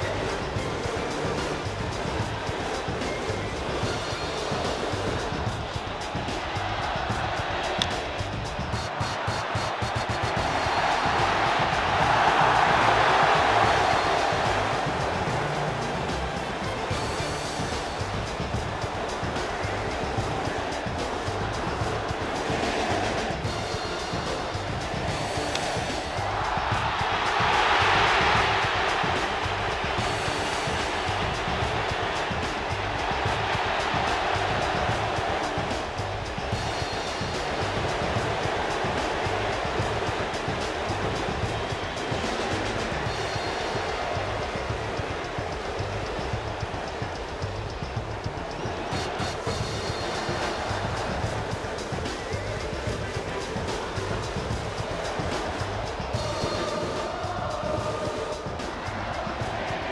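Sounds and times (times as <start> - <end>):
cheering music: 0.0 - 59.9
stadium crowd cheering: 0.0 - 59.9
steady drumbeat: 0.0 - 59.9.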